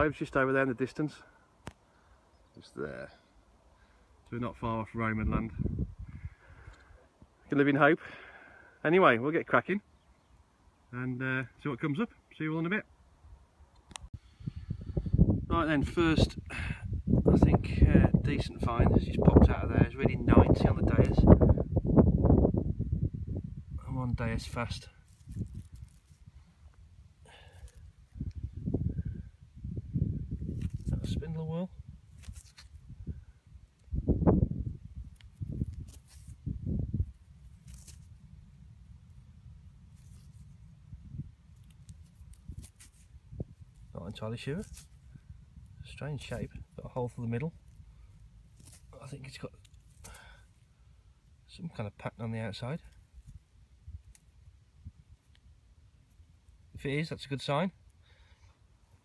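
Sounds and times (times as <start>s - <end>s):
wind rumble on microphone: 5.1s - 6.7s, 14.2s - 26.5s, 28.0s - 46.8s.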